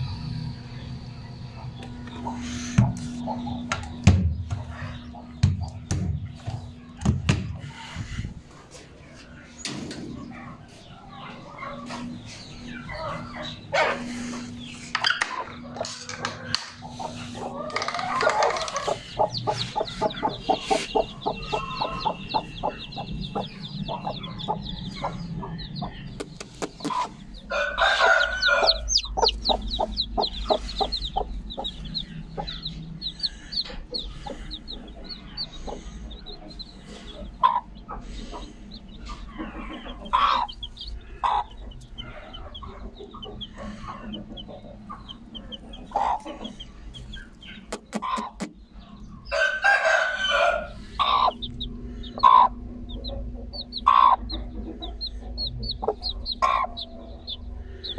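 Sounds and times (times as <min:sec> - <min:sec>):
chicks peeping: 0:00.1 - 0:57.9
hen clucking: 0:01.2 - 0:57.9.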